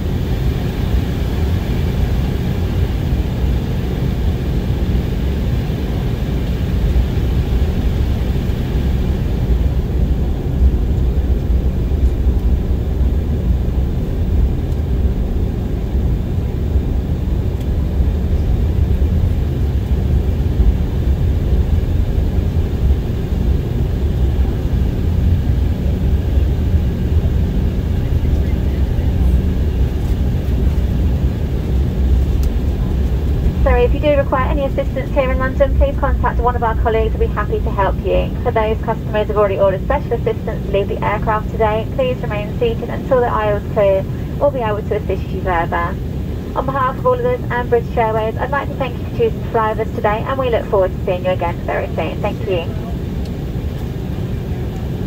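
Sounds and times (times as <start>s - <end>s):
jet engines low rumble: 0.0s - 55.0s.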